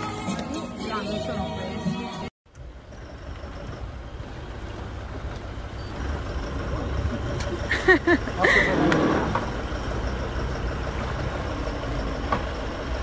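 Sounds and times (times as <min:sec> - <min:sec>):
boat motor rumbling: 0:02.6 - 0:13.0
voices: 0:06.0 - 0:12.2.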